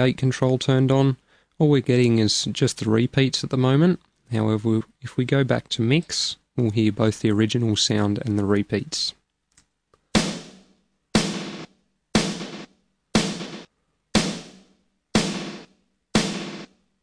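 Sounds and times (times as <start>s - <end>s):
snare drum hits: 10.2s - 16.8s.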